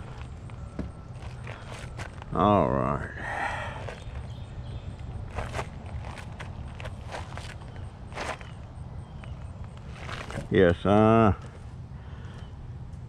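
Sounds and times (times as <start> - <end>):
footsteps on gravel: 0.0 - 11.6
low steady hum: 0.0 - 13.0.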